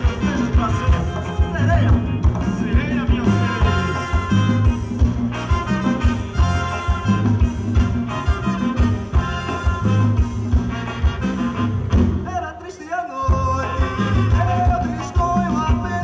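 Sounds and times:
electric bass and drums: 0:00.0 - 0:12.2
horn section playing: 0:00.0 - 0:12.5, 0:13.5 - 0:16.0.

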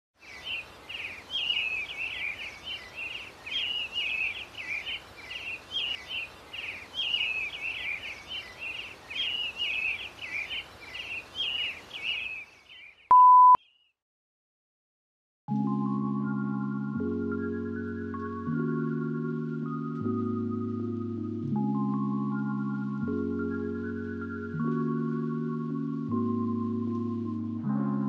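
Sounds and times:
faint steady hiss: 0:00.2 - 0:12.6
bird chirping: 0:00.2 - 0:14.0
loud steady beep: 0:13.1 - 0:13.6.

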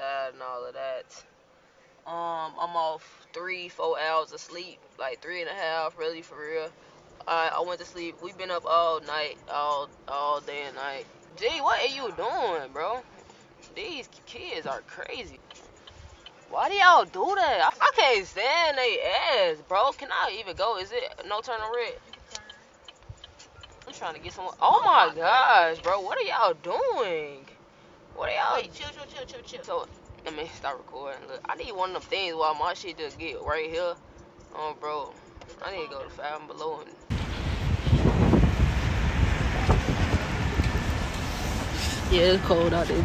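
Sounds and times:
street traffic: 0:03.0 - 0:43.0
turn signal ticking: 0:11.1 - 0:17.4, 0:19.9 - 0:25.2, 0:31.6 - 0:41.3
wind buffeting microphone: 0:37.1 - 0:43.0.

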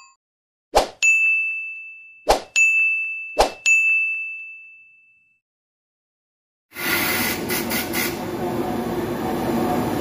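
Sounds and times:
bright dings: 0:01.0 - 0:05.4.

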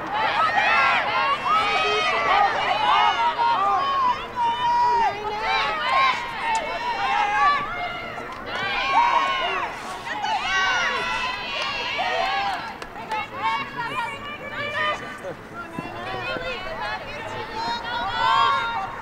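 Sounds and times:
women shouting and calling out: 0:00.2 - 0:19.0.

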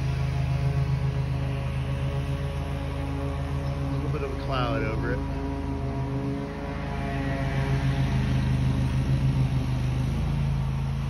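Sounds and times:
low drone with held tones: 0:00.0 - 0:11.0.

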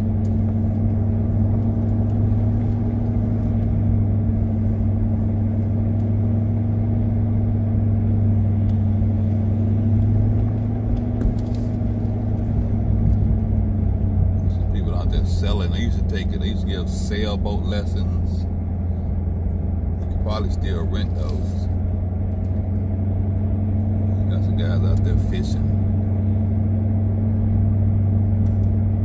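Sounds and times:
car engine low drone: 0:00.0 - 0:29.0.

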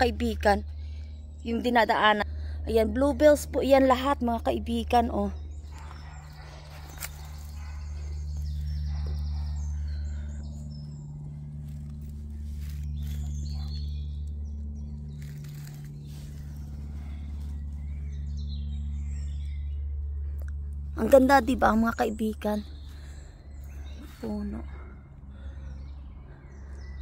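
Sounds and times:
birds singing and chirping: 0:00.0 - 0:27.0
low rumble on microphone: 0:00.0 - 0:27.0.

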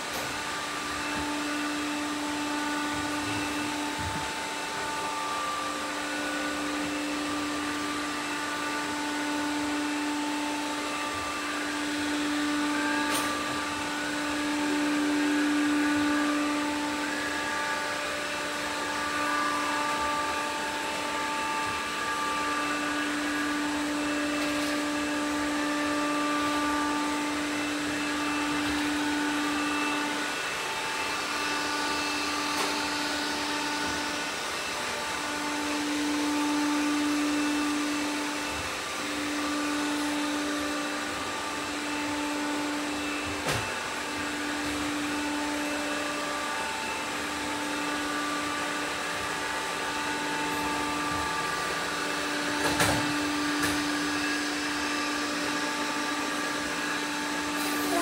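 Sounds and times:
robot vacuum cleaners humming: 0:00.0 - 0:58.0.

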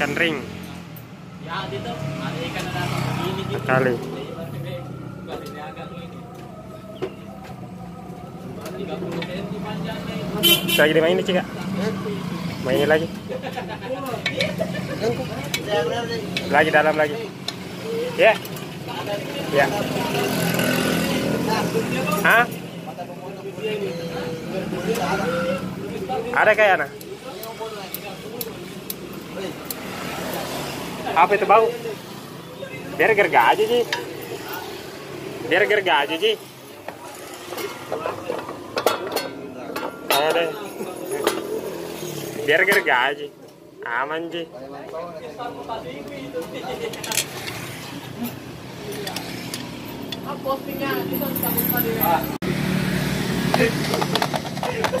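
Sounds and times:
metal tools clinking: 0:37.5 - 0:42.3, 0:46.8 - 0:47.7.

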